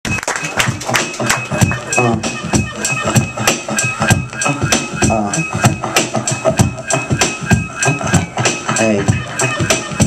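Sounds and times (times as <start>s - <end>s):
hip-hop beat: 0.0s - 10.0s.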